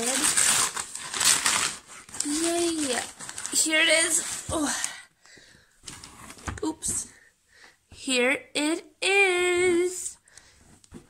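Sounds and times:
packing paper rustling: 0:00.0 - 0:05.0.

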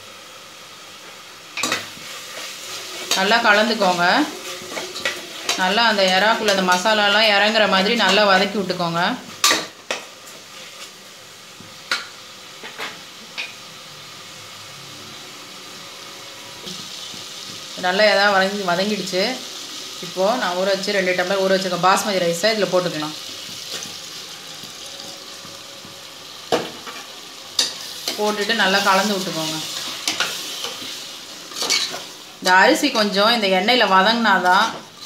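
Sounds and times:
food sizzling: 0:00.0 - 0:35.0.

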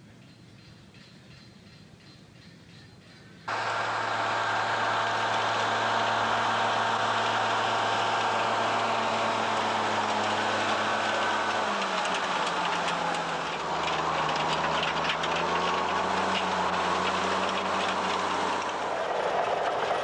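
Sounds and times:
tracked vehicle engine running: 0:03.5 - 0:20.0.

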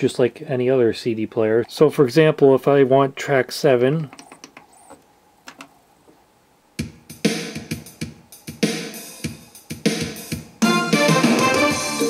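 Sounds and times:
music with strong regular beat: 0:06.8 - 0:12.0.

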